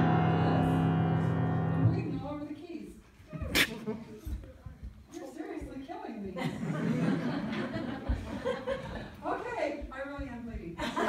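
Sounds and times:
piano chord ringing: 0:00.0 - 0:02.3.

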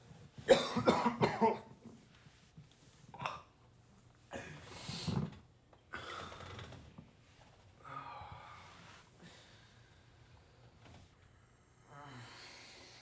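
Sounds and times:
man coughing: 0:00.5 - 0:01.8.

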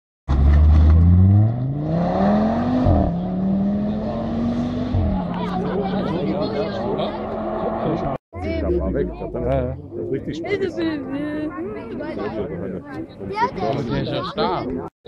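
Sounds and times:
car engine revving: 0:00.3 - 0:08.2
people talking: 0:04.9 - 0:14.9.

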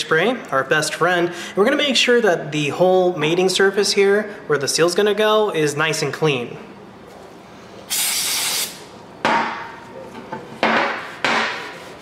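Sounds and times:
aerosol spray hiss: 0:07.9 - 0:08.8.

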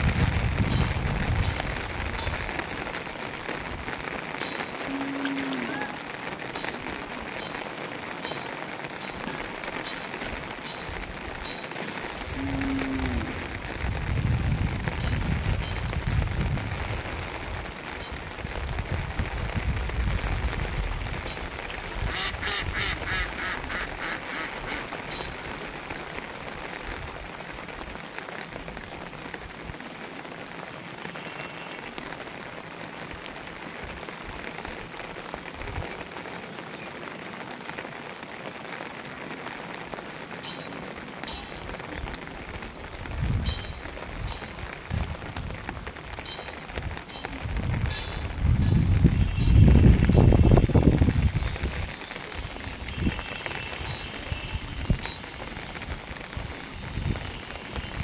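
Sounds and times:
rain falling on water: 0:00.0 - 0:58.0
short calls: 0:22.1 - 0:24.9.

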